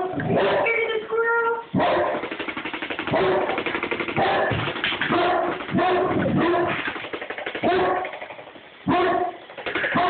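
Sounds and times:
dog barking deeply: 0:01.7 - 0:02.2, 0:03.1 - 0:03.6, 0:05.1 - 0:06.8, 0:07.6 - 0:08.2, 0:08.8 - 0:09.4
fast continuous rattle: 0:01.8 - 0:10.0.

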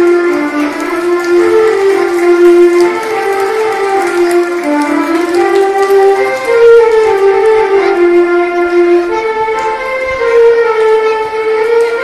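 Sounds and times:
electronic keyboard slow melody: 0:05.4 - 0:12.0.

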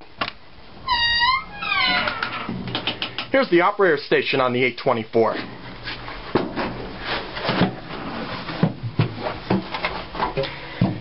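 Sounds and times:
door hinges squeaking: 0:00.8 - 0:03.0.

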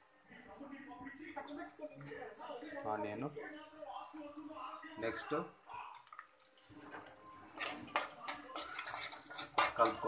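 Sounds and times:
metal spatula scraping a pot: 0:06.6 - 0:10.0.

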